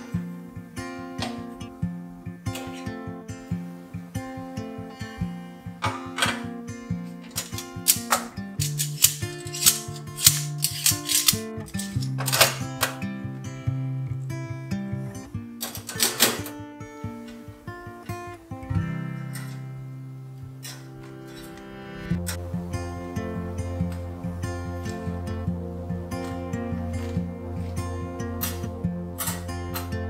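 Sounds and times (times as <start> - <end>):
acoustic guitar music: 0.0 - 30.0
metal dish rack clacking: 15.6 - 16.5.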